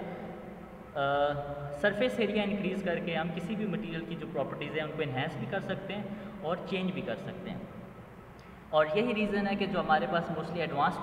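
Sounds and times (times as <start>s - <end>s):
man speaking: 0.9s - 7.8s, 8.7s - 11.0s.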